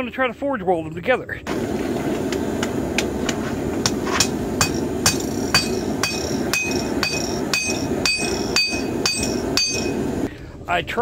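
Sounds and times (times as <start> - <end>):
hammer striking metal on anvil: 3.0 - 10.1.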